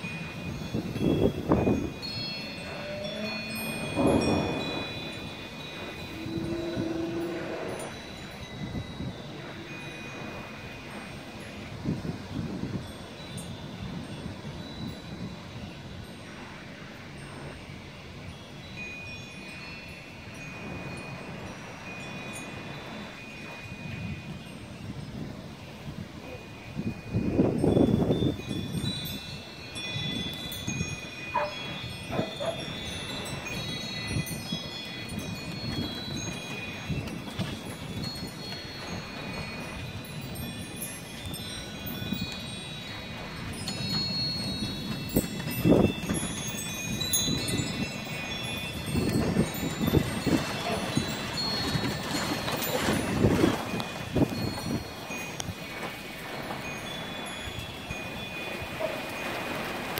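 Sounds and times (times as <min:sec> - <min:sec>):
wind chimes ringing: 0:00.0 - 0:59.9
wind gusts on microphone: 0:00.0 - 0:59.9.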